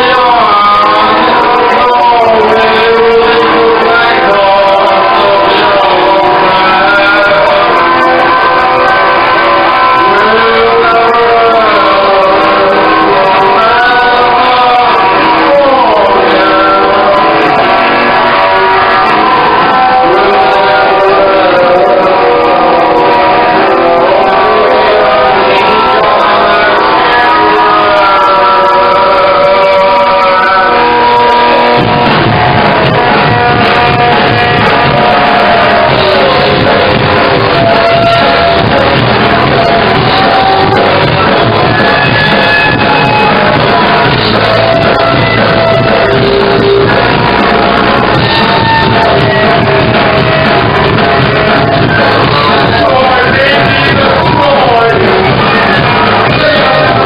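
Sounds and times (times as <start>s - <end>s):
bass and drums: 0.0s - 57.0s
live rock band playing: 0.0s - 57.0s
ringing guitar notes: 0.0s - 57.0s.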